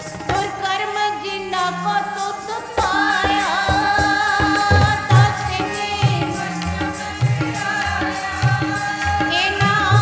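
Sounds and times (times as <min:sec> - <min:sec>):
harmonium chords: 0:00.0 - 0:10.0
woman singing a hymn: 0:00.3 - 0:10.0
tabla strokes: 0:02.8 - 0:10.0.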